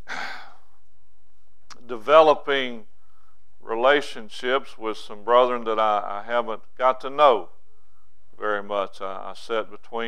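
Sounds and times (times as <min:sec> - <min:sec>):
man drawing breath: 0:00.0 - 0:00.7, 0:03.0 - 0:03.5
low room hum: 0:00.0 - 0:10.0.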